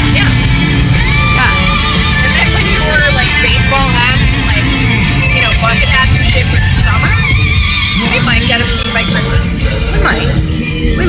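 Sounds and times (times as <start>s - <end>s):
music with sung vocals: 0.0s - 11.0s
road noise rumble: 0.0s - 11.0s.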